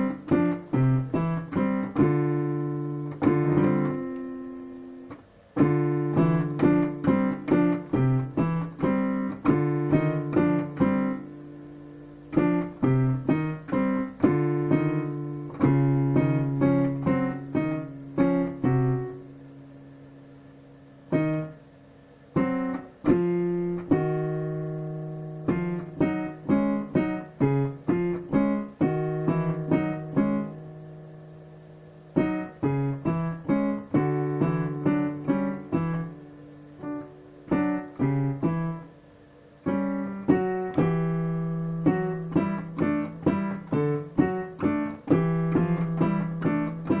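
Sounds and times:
digital piano playing: 0.0 - 47.0.

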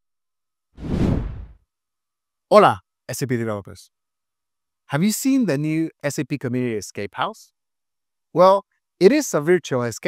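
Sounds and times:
whoosh transition effect: 0.8 - 1.6.

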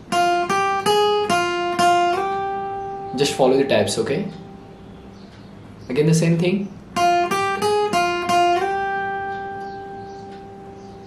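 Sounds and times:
acoustic guitar single notes: 0.0 - 11.0.

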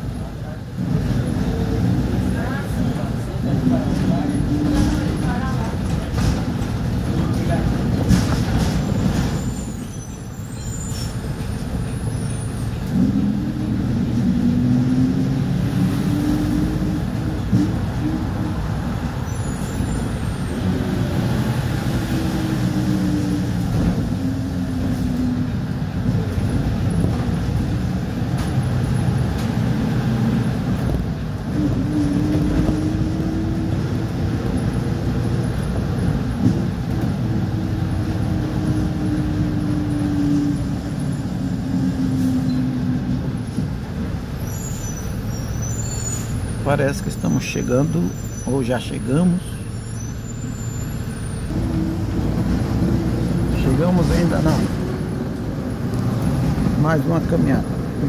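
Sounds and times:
bus engine hum: 0.0 - 58.0
road rumble: 0.0 - 58.0.

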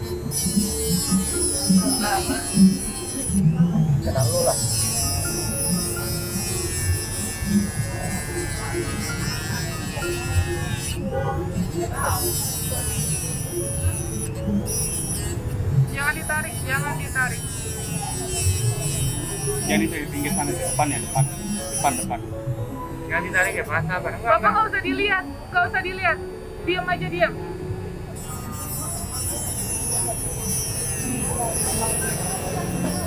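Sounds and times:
rotary tool cutting metal: 0.0 - 22.7, 28.2 - 33.0.

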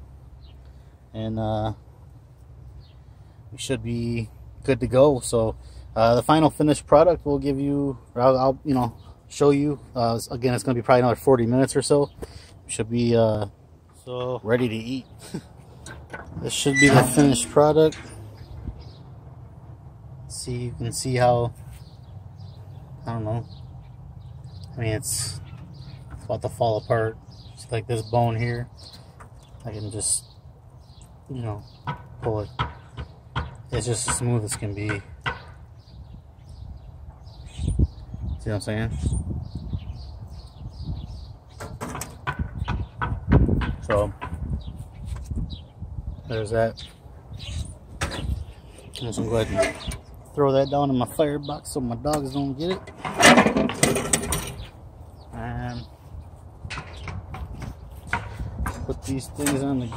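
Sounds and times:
knocks and rattles of handling: 52.7 - 54.7, 56.7 - 59.9.

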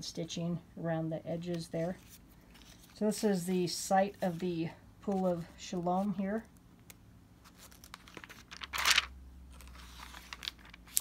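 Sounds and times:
book pages turning: 1.4 - 3.4, 4.1 - 6.2, 6.8 - 11.0
paper rustling: 1.5 - 3.4, 7.4 - 11.0.

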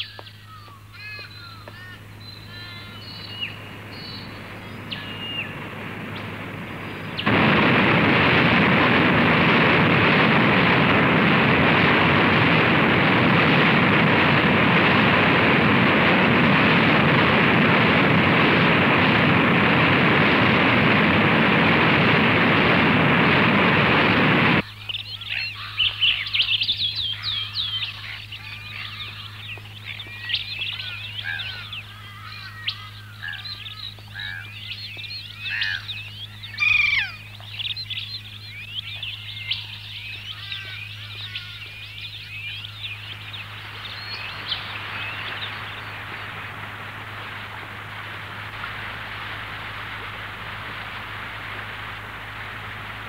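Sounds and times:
bird calls and chirps: 0.0 - 7.3, 24.6 - 46.3
surf breaking against rocks: 2.7 - 24.6.

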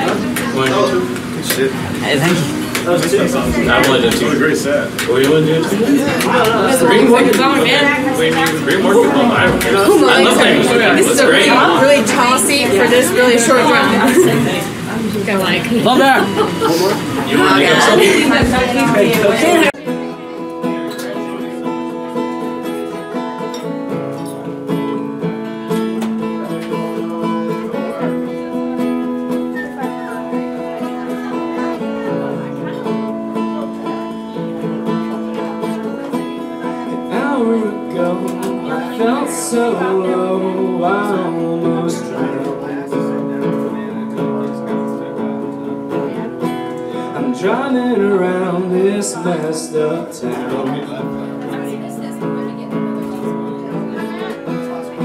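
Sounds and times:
acoustic guitar chords: 0.0 - 55.0
voices in a room: 0.0 - 55.0.

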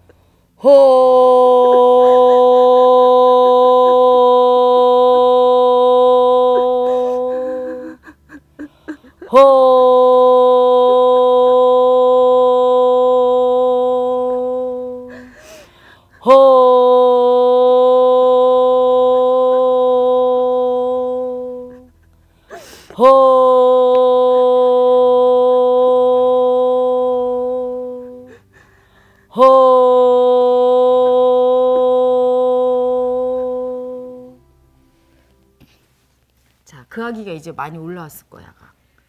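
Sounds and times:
woman holding long hooo: 0.6 - 28.6, 29.3 - 34.4.

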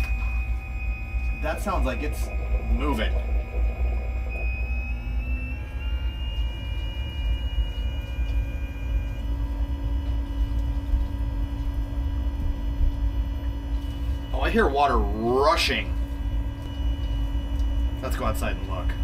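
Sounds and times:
water rushing through pump: 0.0 - 9.5
water pump running: 0.0 - 19.0.

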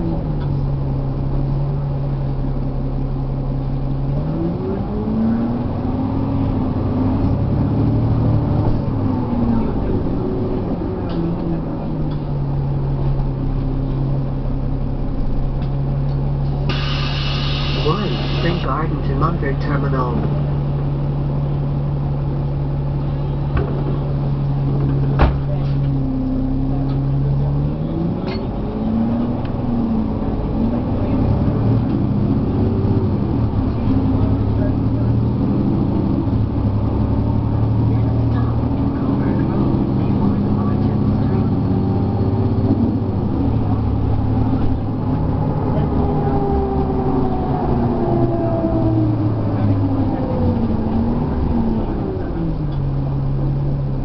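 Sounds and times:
bus diesel engine: 0.0 - 54.0.

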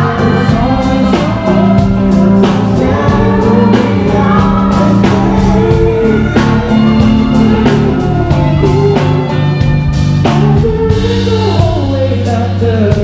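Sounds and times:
live band playing: 0.0 - 13.0
man singing into microphone: 0.0 - 13.0.

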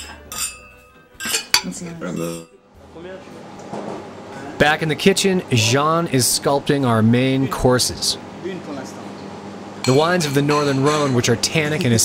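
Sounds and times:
cutlery clinking on plates: 0.0 - 2.6.

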